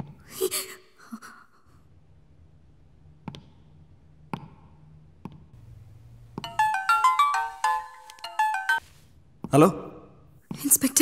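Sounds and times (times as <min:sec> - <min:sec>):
mobile phone ringtone melody: 0:06.4 - 0:08.8.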